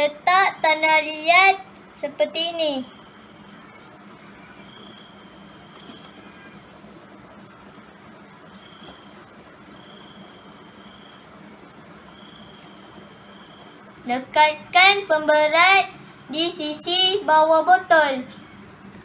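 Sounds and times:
faint high-pitched tone: 2.0 - 6.8.

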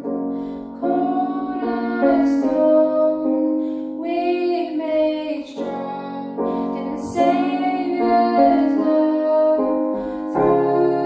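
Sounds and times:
digital piano: 0.0 - 11.0
woman singing: 0.5 - 11.0.

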